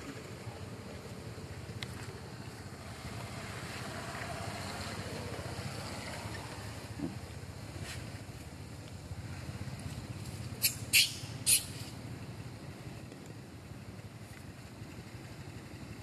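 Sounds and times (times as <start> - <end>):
low outdoor rumble: 0.0 - 16.0.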